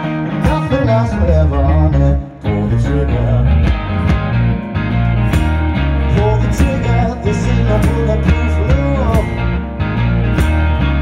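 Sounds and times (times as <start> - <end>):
live blues-rock band: 0.0 - 11.0
person singing: 0.2 - 3.7, 6.0 - 9.7.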